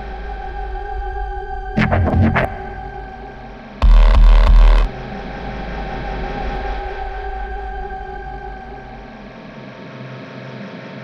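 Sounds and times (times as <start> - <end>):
low bass rumble: 1.8 - 4.9
synthesizer drone: 1.8 - 5.7.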